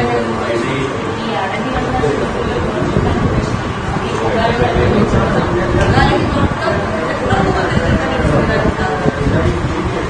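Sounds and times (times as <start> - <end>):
woman talking: 1.2 - 9.2.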